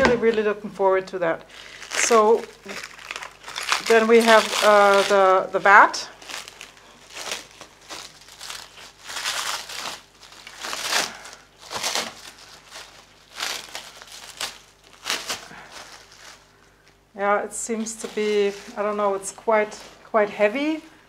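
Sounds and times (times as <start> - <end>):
plastic bag crinkling: 1.5 - 17.0, 17.6 - 20.0.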